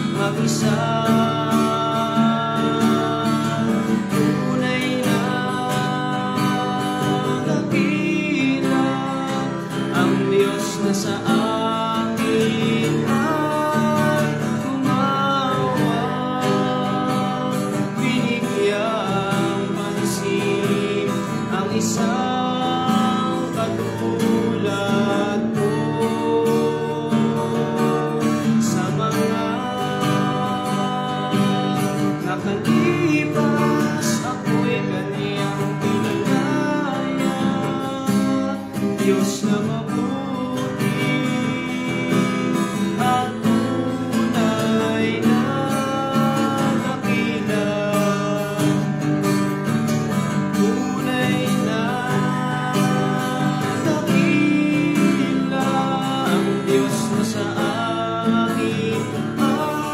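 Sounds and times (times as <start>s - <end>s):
man singing: 0.0s - 59.9s
strummed acoustic guitar: 0.0s - 59.9s.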